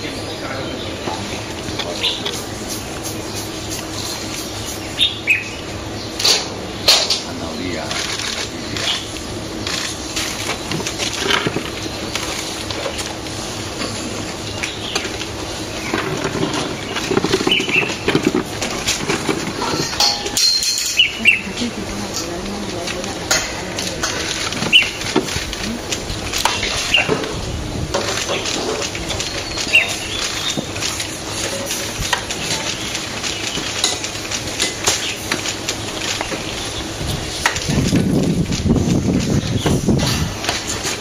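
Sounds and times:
steady background noise: 0.0s - 41.0s
high bird chirp: 3.2s - 6.3s, 14.4s - 18.2s, 19.6s - 21.7s, 24.6s - 25.1s, 26.5s - 27.2s, 29.1s - 30.7s.

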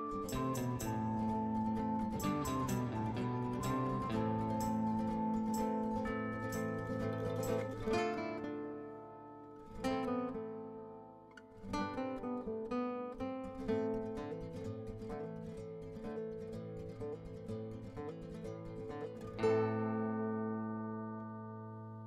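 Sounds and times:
plucked acoustic guitar: 0.0s - 22.0s.

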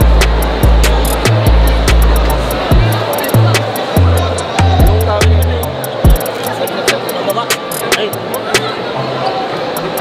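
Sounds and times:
background music: 0.0s - 10.0s
indistinct voices: 0.0s - 10.0s.

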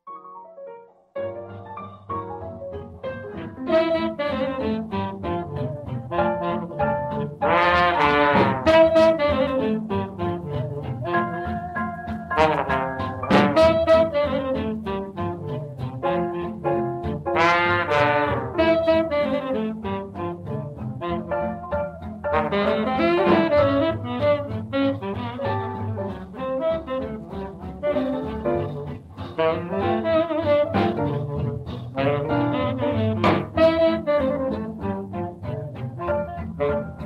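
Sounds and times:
double bass: 2.0s - 37.0s
jazz band brass and saxophones: 2.8s - 37.0s.

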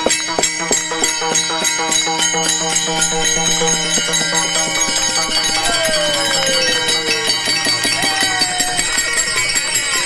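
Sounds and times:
hand cymbals clashing: 0.0s - 10.0s
barrel drum beat: 2.9s - 9.2s
pitch gliding downward: 3.0s - 10.0s.

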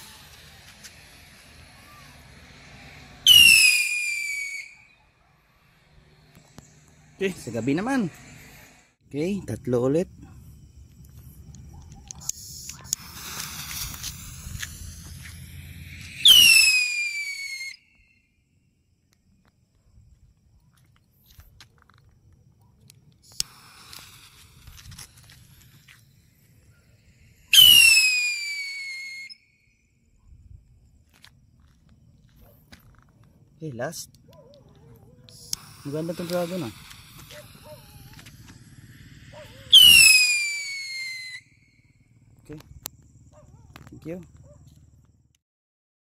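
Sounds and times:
rocket fuse fizzing: 0.0s - 8.9s, 11.4s - 17.9s, 23.0s - 29.4s, 35.3s - 41.6s
rocket whistle falling in pitch: 3.2s - 5.0s, 15.2s - 18.0s, 27.5s - 29.4s, 39.6s - 41.6s.

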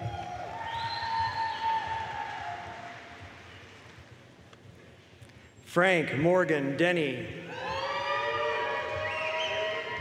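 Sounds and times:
audience cheering and clapping: 0.0s - 3.4s, 7.5s - 10.0s.

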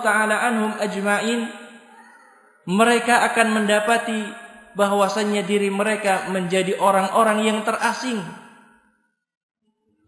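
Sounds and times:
man's voice: 0.0s - 1.7s, 2.7s - 8.4s.

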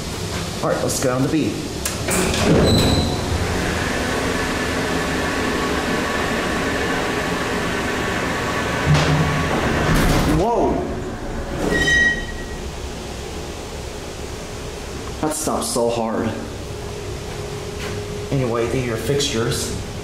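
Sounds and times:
elevator drive humming and whining: 0.0s - 20.0s.

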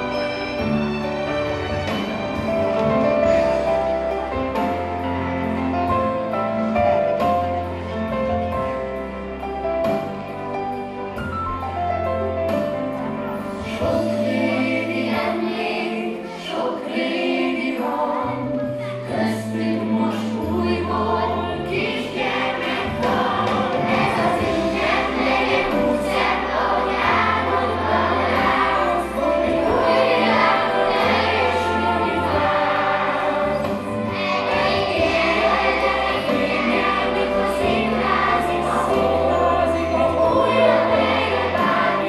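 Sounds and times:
children's choir singing: 0.0s - 7.3s, 13.6s - 42.0s.

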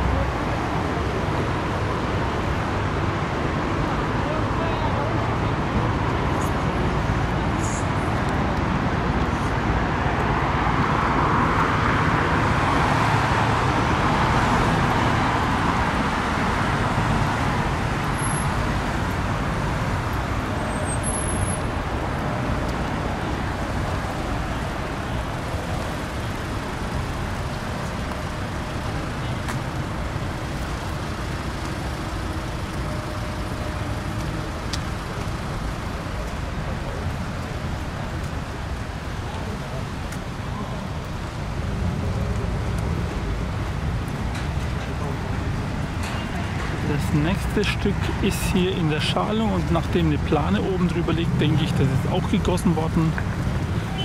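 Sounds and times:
rumble of passing cars: 0.0s - 54.0s.

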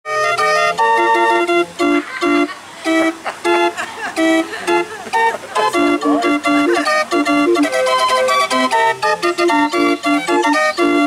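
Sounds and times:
street organ playing: 0.1s - 11.0s.

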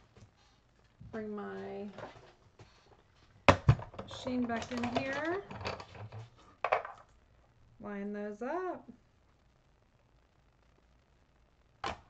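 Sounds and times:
woman speaking: 1.2s - 2.0s, 4.1s - 5.5s, 7.8s - 9.0s.

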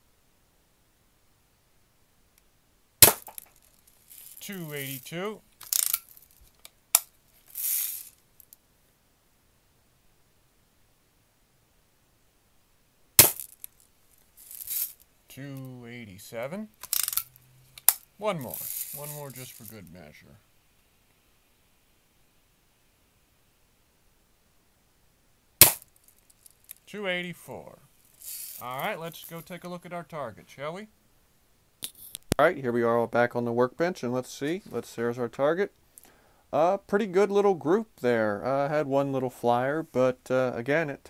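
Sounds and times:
bb gun pop: 3.0s - 3.4s, 13.2s - 13.5s, 25.6s - 25.9s.

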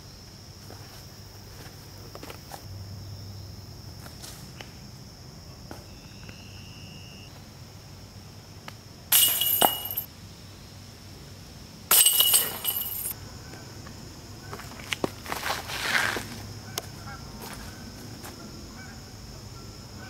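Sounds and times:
disc hitting rattling metal chains: 9.1s - 10.1s, 11.9s - 13.1s.

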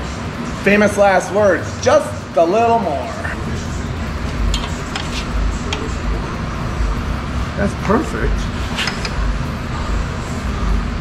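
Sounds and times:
low shop background noise: 0.0s - 11.0s.

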